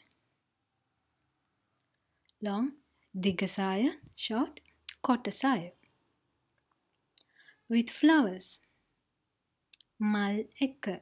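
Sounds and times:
woman speaking: 2.3s - 5.8s, 7.7s - 8.7s, 9.8s - 11.0s.

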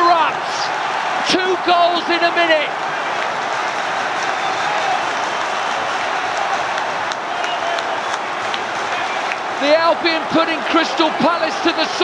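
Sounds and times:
stadium crowd cheering and applauding: 0.0s - 12.0s.

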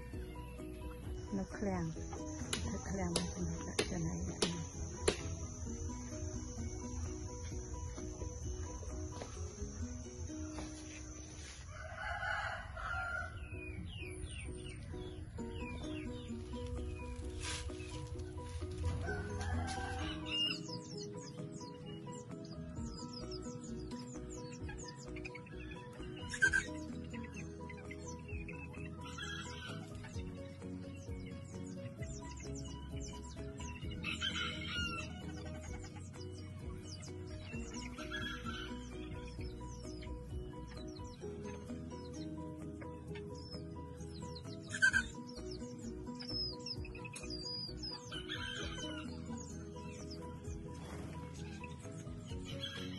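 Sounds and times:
background music: 0.0s - 52.9s
roosters crowing: 11.1s - 16.4s, 17.7s - 21.7s, 24.4s - 30.5s, 32.2s - 42.2s, 44.2s - 45.4s, 47.5s - 52.9s.

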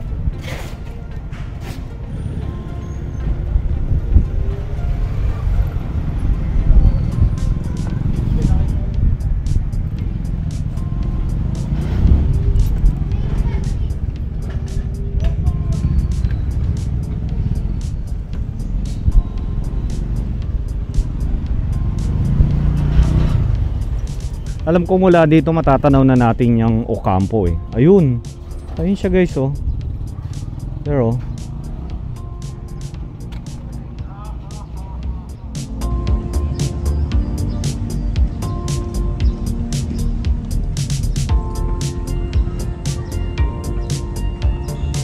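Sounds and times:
background music: 0.0s - 45.0s
motorcycles and vehicles rumbling: 0.0s - 45.0s
voices: 4.4s - 38.5s.

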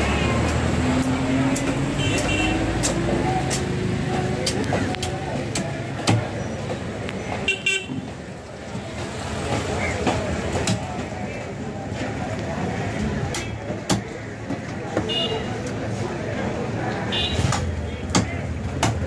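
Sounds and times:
traffic: 0.0s - 19.0s
voices: 0.0s - 19.0s.

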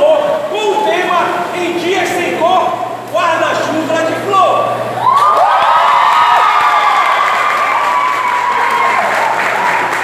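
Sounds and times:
audience applauding: 5.0s - 10.0s
crowd shouting and screaming: 5.0s - 10.0s.

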